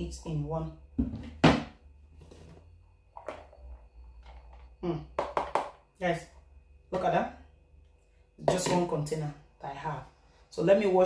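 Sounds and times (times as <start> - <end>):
plastic container clicks and knocks: 5.2 - 5.8.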